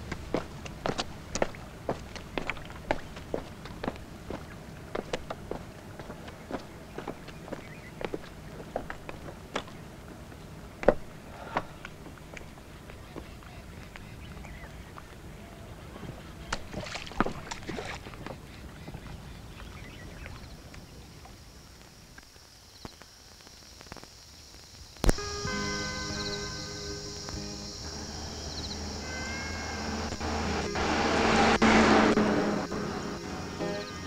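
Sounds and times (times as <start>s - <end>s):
car engine drone inside cabin: 27.6s - 34.0s.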